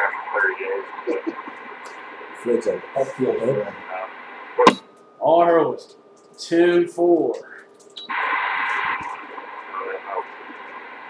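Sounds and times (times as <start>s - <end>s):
garbled radio speech: 0.0s - 4.8s, 6.6s - 10.8s
radio static: 0.0s - 4.8s, 7.4s - 11.0s
sharp crack: 4.6s - 4.9s.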